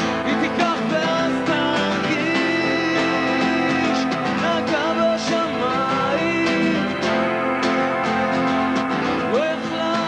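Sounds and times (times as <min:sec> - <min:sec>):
live rock band playing: 0:00.0 - 0:10.0
person singing: 0:00.0 - 0:10.0.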